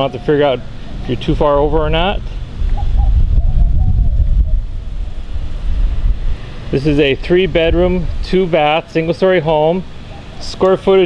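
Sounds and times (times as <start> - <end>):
wind buffeting microphone: 0.6 - 8.7.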